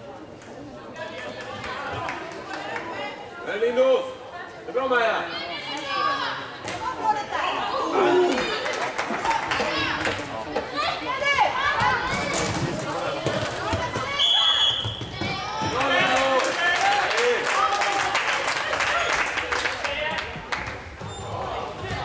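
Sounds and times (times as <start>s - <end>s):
high whistle: 14.2s - 15.0s
players and spectators shouting: 21.1s - 22.0s.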